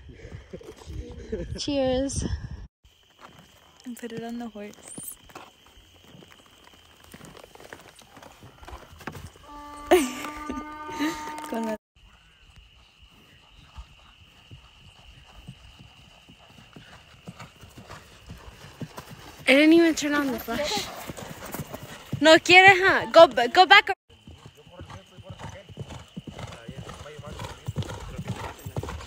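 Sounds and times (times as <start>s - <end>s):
horse hooves clip-clopping: 2.9s - 29.0s.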